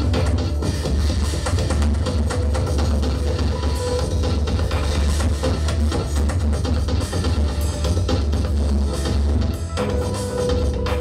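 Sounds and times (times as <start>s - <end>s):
programmed drum beat: 0.0s - 11.0s.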